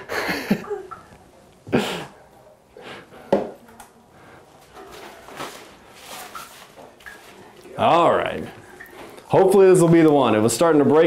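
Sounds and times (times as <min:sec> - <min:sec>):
person laughing: 0:00.0 - 0:00.9
handling noises: 0:04.6 - 0:07.6.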